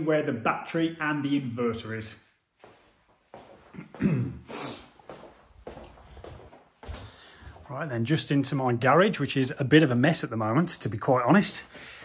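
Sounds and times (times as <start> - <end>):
quiet footsteps: 2.6 - 7.9.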